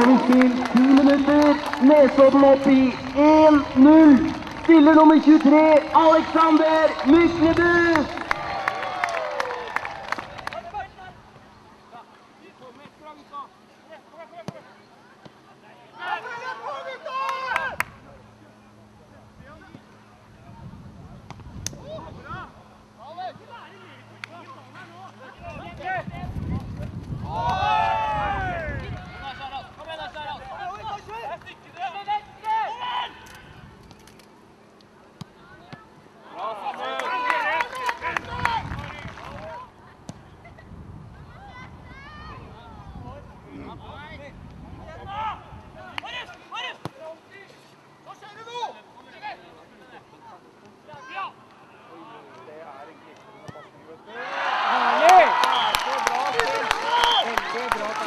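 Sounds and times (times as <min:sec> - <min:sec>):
players shouting: 0:15.5 - 0:17.9, 0:27.2 - 0:33.2, 0:53.2 - 0:58.0.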